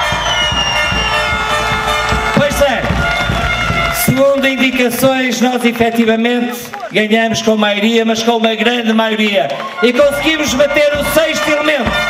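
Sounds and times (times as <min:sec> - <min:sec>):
long high whistle: 0:00.0 - 0:02.4
music: 0:00.0 - 0:07.5, 0:08.1 - 0:12.0
crowd cheering and clapping: 0:00.0 - 0:12.0.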